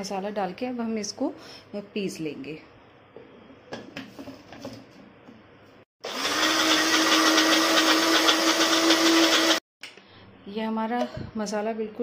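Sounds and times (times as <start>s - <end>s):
electric mixer-grinder whining: 6.0s - 9.6s.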